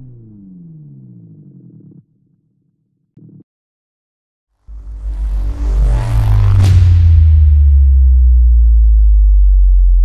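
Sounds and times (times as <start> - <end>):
deep electronic sub-bass tone: 0.0 - 2.2, 4.6 - 10.0.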